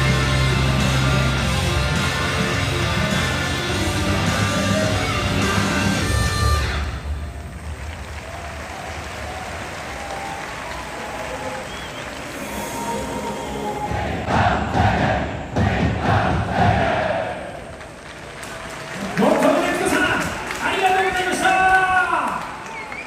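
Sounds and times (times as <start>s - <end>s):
rock music: 0.0s - 7.3s
stadium crowd murmur: 6.9s - 23.0s
supporters chanting: 11.5s - 17.7s.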